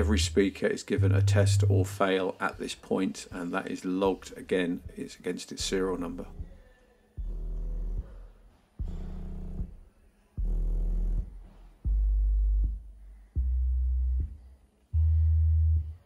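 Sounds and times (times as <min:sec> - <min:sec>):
low subwoofer test tone bursts: 0:00.0 - 0:02.1, 0:07.2 - 0:16.0.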